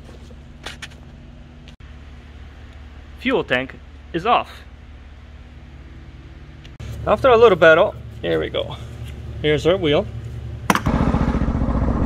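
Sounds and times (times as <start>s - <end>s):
sharp click: 10.7s - 10.9s.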